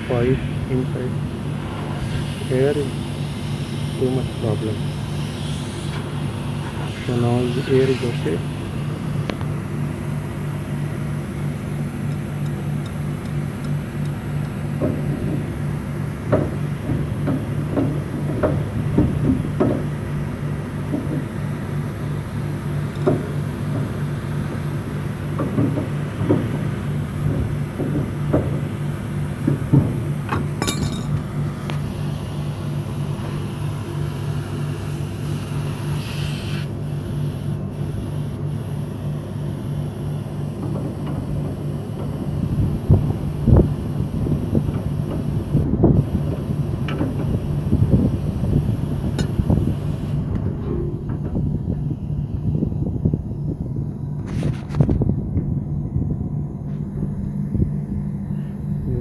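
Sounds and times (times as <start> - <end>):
compressor mains hum: 0.0 - 59.0.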